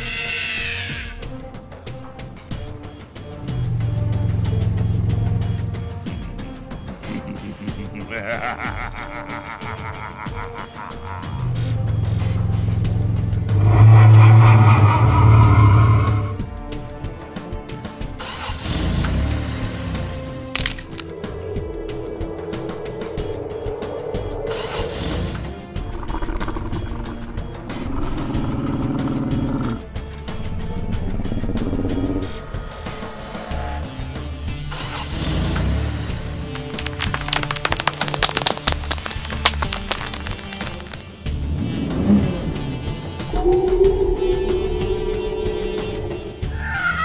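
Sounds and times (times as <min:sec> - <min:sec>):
background music: 0:00.0 - 0:47.0
truck engine rumbling: 0:02.6 - 0:16.5, 0:18.2 - 0:47.0.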